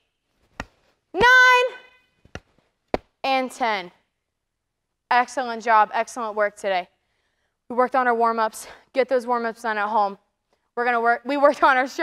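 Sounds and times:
woman counting aloud: 1.2 - 1.9.

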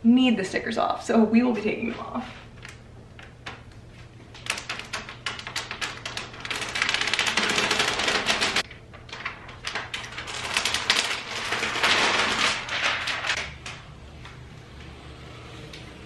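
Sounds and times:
plastic film peeling and crackling: 2.6 - 14.1.

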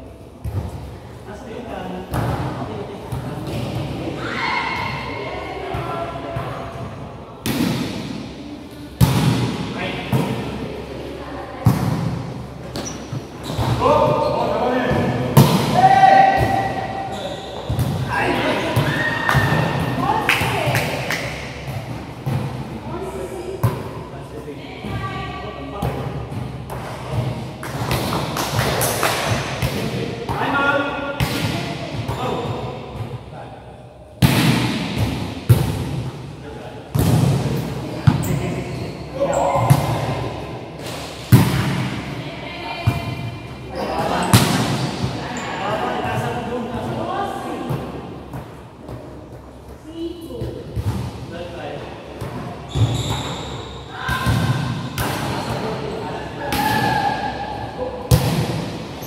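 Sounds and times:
players shouting: 56.5 - 57.8.

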